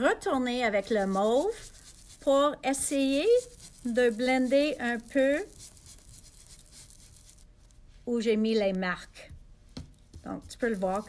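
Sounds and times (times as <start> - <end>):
foam pad scrubbing on card: 0.7 - 7.5, 10.6 - 11.0.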